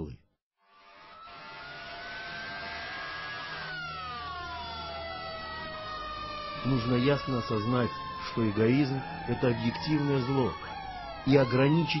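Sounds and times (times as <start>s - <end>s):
sirens wailing: 0.7s - 12.0s.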